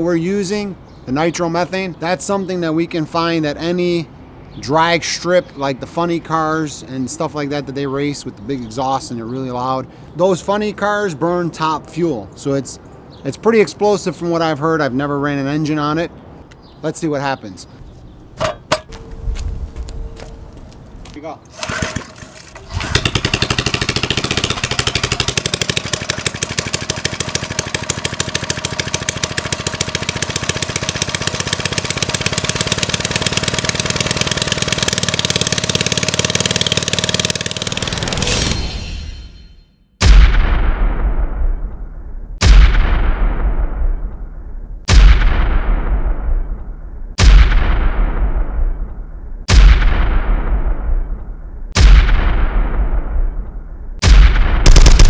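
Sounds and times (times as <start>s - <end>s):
engine cranking: 21.5s - 38.6s
small engine running: 21.6s - 38.5s
deep booms: 40.0s - 55.0s.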